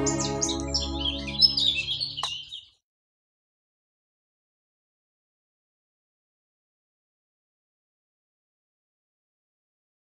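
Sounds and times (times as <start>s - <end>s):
held chord of song accompaniment: 0.0s - 2.2s
small birds chirping: 0.0s - 2.8s.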